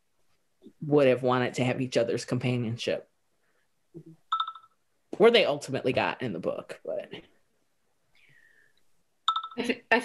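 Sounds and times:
short electronic beep: 4.3 - 4.7.

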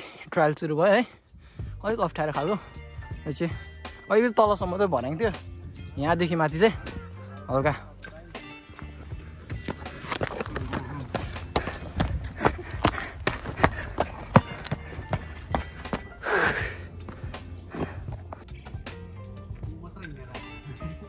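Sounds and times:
background music: 1.5 - 21.0
footsteps on rock: 8.7 - 19.0.

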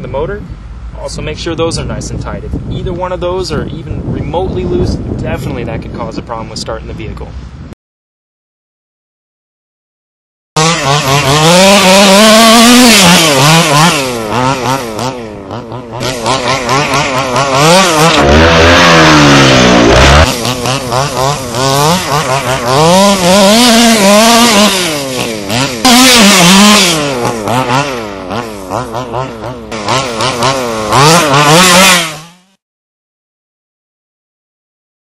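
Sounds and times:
small two-stroke engine revving: 10.6 - 32.6.

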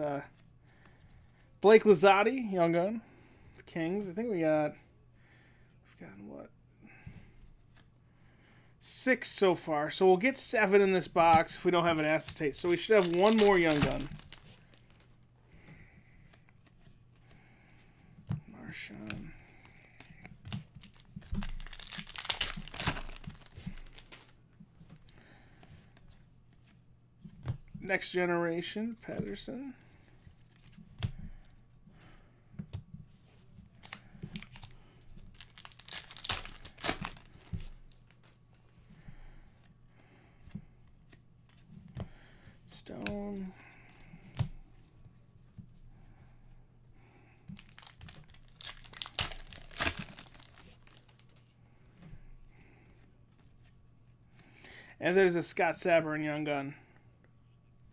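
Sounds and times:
foil wrapper crinkling and tearing: 11.9 - 15.1, 20.8 - 24.4, 33.8 - 38.4, 47.5 - 51.4.

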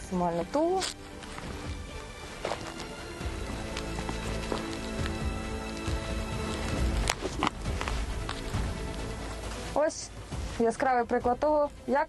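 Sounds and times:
background music with held tones: 0.0 - 12.0
tourniquet rustling and twisting: 0.3 - 10.6
rod snapping: 0.4 - 9.1.

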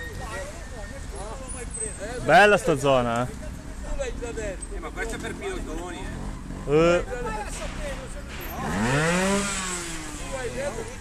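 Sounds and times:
motorcycle engine revving: 5.1 - 7.1, 8.1 - 11.0.

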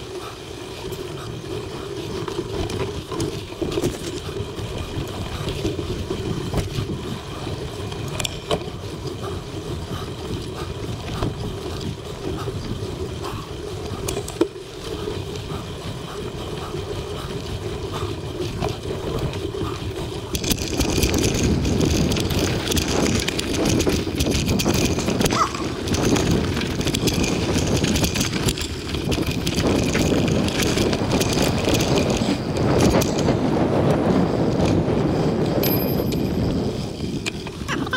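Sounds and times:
bike clicks and rattles: 0.0 - 37.9
bike tyres rolling on dirt: 0.0 - 37.9
wind on microphone: 0.7 - 37.9.

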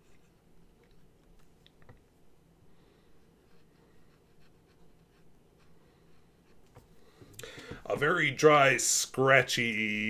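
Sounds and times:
fountain pen scratching on paper: 3.4 - 6.6.

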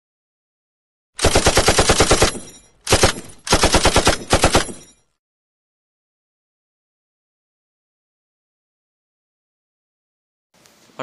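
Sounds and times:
machine-gun fire: 1.2 - 4.9.

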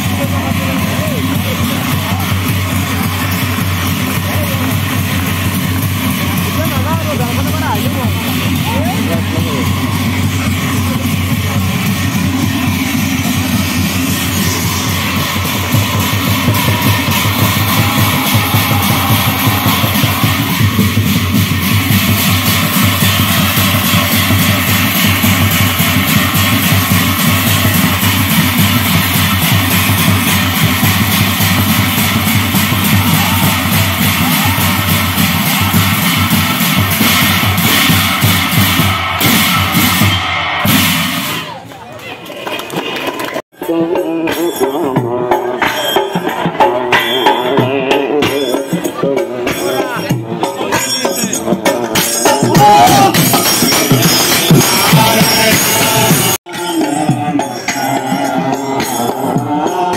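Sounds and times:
brass cymbals clashing: 0.0 - 41.7, 43.7 - 59.9
drums: 0.0 - 59.9
voices: 0.0 - 59.9.

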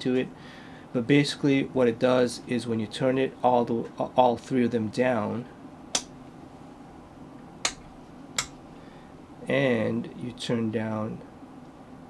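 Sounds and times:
toggle switch clicks: 5.9 - 6.1, 7.6 - 8.6.

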